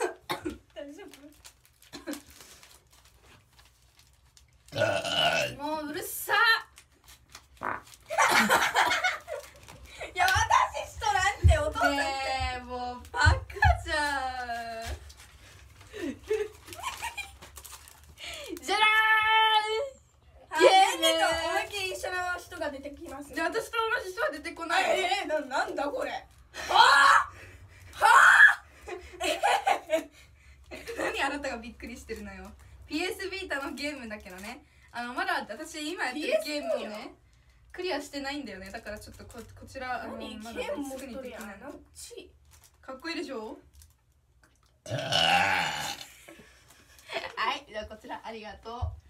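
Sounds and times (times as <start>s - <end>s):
loud human burp: 4.7s - 5.6s, 7.6s - 7.8s, 44.8s - 46.2s
girls laughing excitedly: 8.1s - 10.9s.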